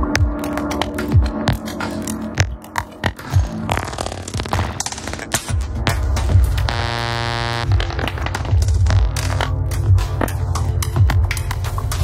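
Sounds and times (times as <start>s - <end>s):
experimental electronic music: 0.0s - 12.0s
glitchy clicks and noise: 0.1s - 10.5s
throbbing bass: 3.4s - 12.0s
buzzing synth tone: 6.6s - 9.5s.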